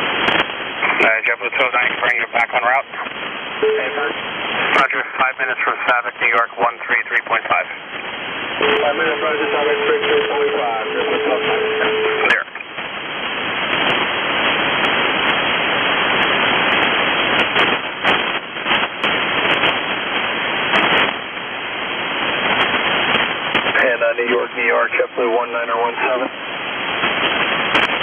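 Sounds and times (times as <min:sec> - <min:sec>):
radio band noise hiss: 0:00.0 - 0:28.0
radio voice: 0:00.8 - 0:07.9, 0:08.6 - 0:12.7, 0:23.7 - 0:26.4.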